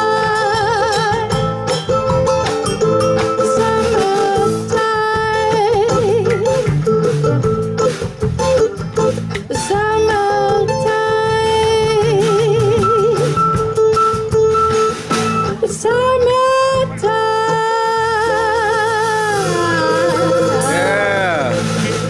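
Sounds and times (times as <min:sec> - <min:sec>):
woman singing with vibrato: 0:00.0 - 0:01.4, 0:03.4 - 0:06.5, 0:09.5 - 0:13.3, 0:15.6 - 0:21.4
drum kit: 0:00.0 - 0:22.0
electric bass: 0:00.0 - 0:22.0.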